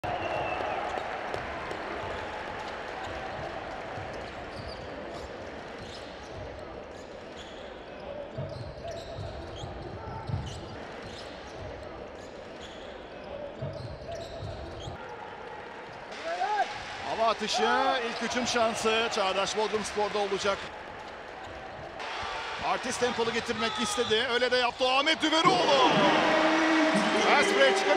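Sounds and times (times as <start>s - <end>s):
basketballs bouncing on court: 0.7s - 6.8s, 8.3s - 12.0s, 13.6s - 15.0s
crowd chatter echoing: 15.0s - 27.9s.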